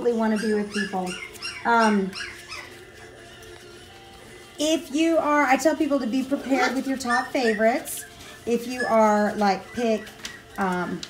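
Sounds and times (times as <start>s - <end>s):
puppies yipping: 0.0s - 11.0s.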